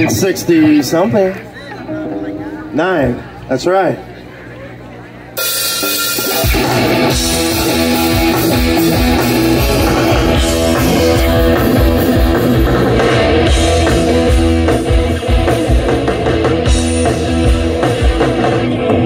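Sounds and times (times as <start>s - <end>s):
bass guitar: 0.0s - 19.0s
electric guitars: 4.1s - 19.0s
drum kit: 5.4s - 19.0s.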